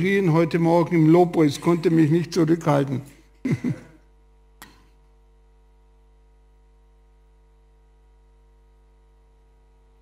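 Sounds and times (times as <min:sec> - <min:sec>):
faint steady hum: 0:00.0 - 0:10.0
man clearing throat: 0:03.4 - 0:04.1.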